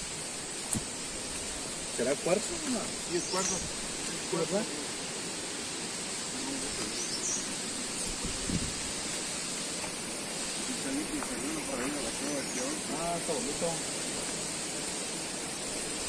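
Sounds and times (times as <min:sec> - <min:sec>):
outdoor background hiss: 0:00.0 - 0:16.0.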